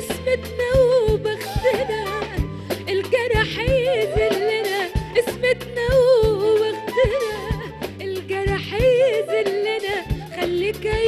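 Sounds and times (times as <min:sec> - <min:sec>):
band accompaniment: 0:00.0 - 0:11.0
woman singing: 0:00.0 - 0:11.0.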